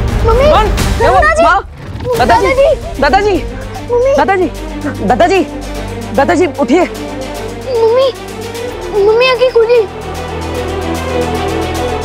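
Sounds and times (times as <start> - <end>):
dramatic background music: 0.0 - 12.0.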